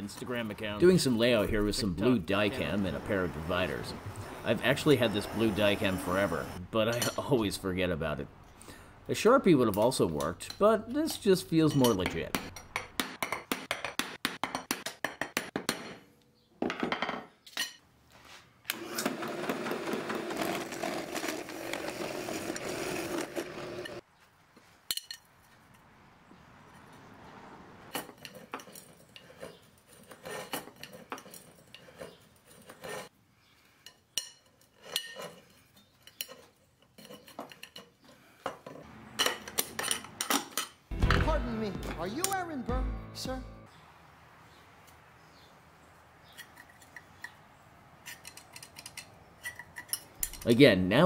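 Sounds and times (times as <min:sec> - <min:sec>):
metal tools clinking on workbench: 0:09.8 - 0:12.8, 0:39.2 - 0:40.8.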